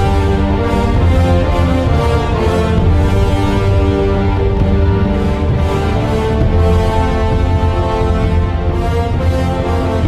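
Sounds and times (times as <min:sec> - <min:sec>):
orchestra playing held chords: 0:00.0 - 0:10.0.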